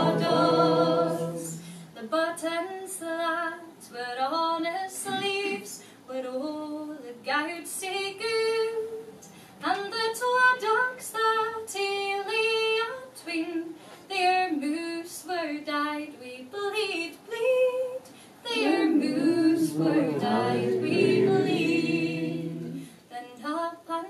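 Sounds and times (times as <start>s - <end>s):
lower voices singing: 0.0s - 1.9s, 18.5s - 23.0s
woman singing unaccompanied: 0.0s - 24.0s.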